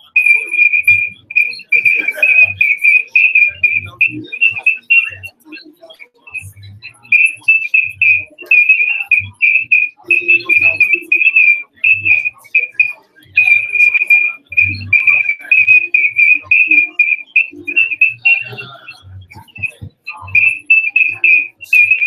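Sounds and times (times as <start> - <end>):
faint murmuring voices: 0.0 - 22.0.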